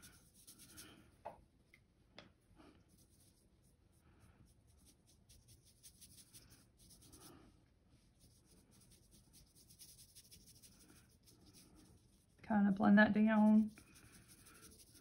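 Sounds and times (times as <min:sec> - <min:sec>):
paintbrush brushing on paper: 0:00.0 - 0:01.2, 0:02.8 - 0:12.5, 0:13.2 - 0:15.0.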